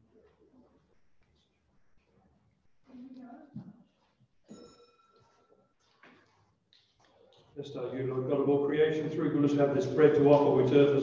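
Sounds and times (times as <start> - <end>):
faint ringing tone: 4.4 - 5.8.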